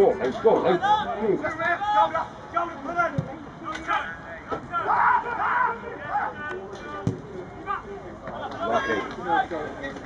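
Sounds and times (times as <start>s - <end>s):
people shouting: 3.8s - 6.5s.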